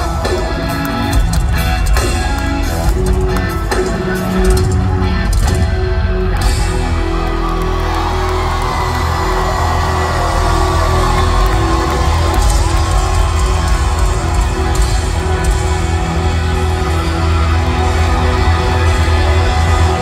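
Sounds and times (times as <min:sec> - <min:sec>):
drums: 0:00.0 - 0:20.0
electric guitar: 0:00.0 - 0:20.0
heavy bass: 0:00.0 - 0:20.0.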